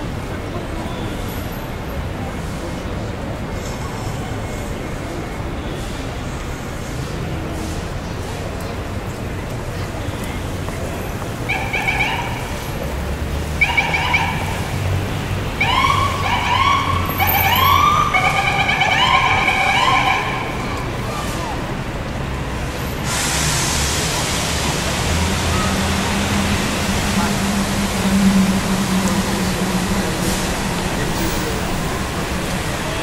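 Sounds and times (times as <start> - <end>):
city traffic rumble: 0.0 - 33.0
street noise hiss: 0.0 - 33.0
emergency siren whooping: 15.6 - 20.8, 24.6 - 32.3
low engine hum: 24.0 - 33.0.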